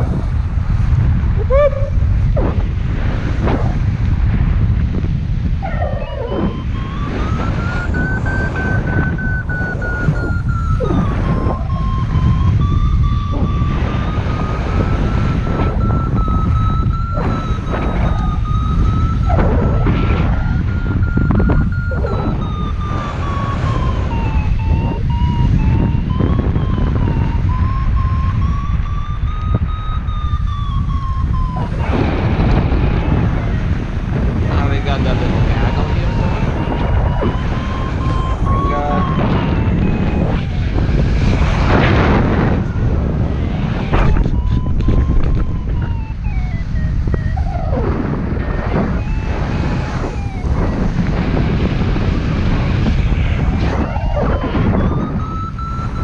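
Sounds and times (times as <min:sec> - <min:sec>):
wind rumble on microphone: 0:00.0 - 0:56.0
variometer electronic tone: 0:05.0 - 0:56.0.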